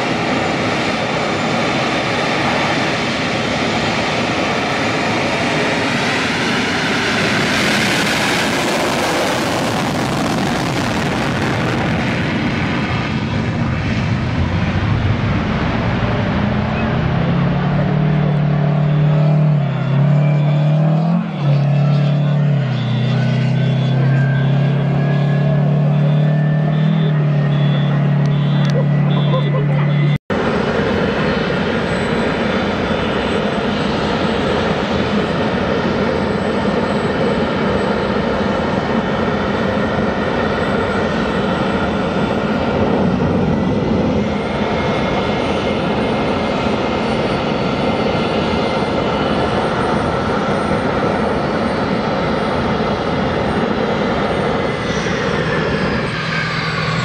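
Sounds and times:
jet engine roar with whine: 0.0 - 57.0
strong low hum: 9.4 - 31.2.

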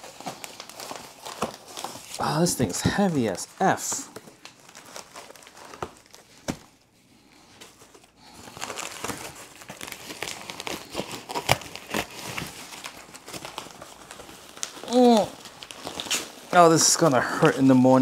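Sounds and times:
crinkling packing wrap: 0.0 - 18.0.

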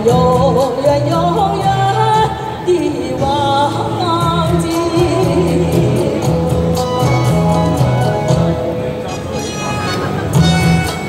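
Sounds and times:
woman singing into a microphone: 0.0 - 6.8
pop backing track with bass line: 0.0 - 11.0.

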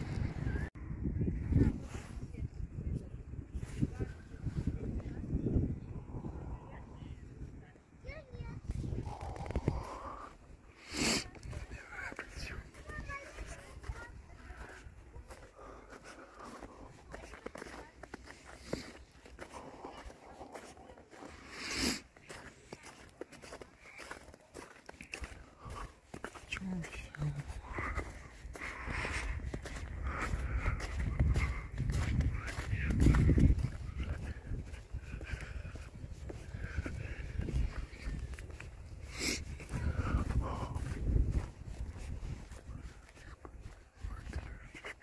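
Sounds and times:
footsteps on packed snow: 8.1 - 45.0.

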